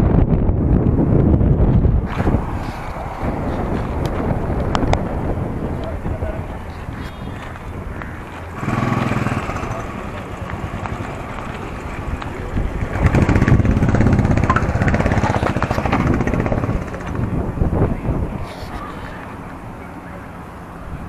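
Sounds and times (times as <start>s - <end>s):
wind on microphone: 0.0s - 21.0s
motorcycle engine running: 7.1s - 18.2s.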